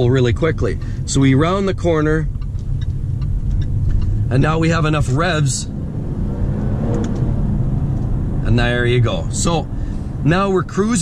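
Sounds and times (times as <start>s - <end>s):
gear shift: 2.2s - 4.4s, 5.0s - 8.4s
car engine accelerating: 2.2s - 11.0s.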